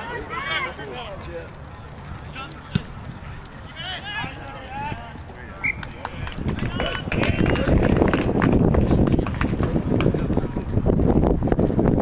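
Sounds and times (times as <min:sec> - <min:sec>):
distant shouts: 0:00.0 - 0:07.8
low rumbling on microphone: 0:00.0 - 0:12.0.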